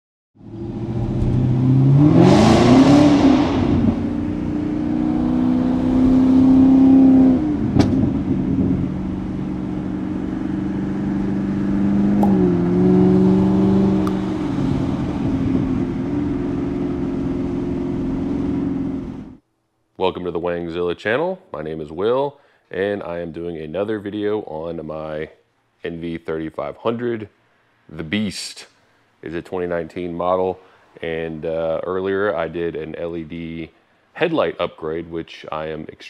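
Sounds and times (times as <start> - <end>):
car engine revving: 0.4 - 19.4.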